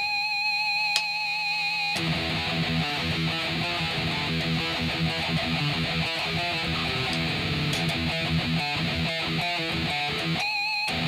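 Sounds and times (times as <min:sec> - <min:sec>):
electric guitar metal riff: 0:02.0 - 0:11.0.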